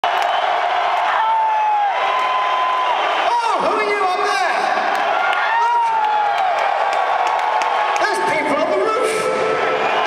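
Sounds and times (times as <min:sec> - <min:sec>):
arena crowd cheering: 0:00.0 - 0:10.0.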